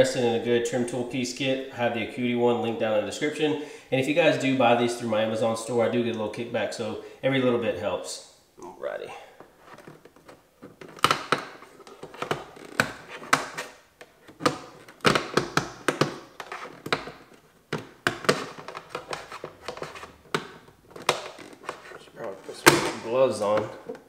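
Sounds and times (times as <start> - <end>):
plastic clips clicking and knocking: 10.2 - 21.8.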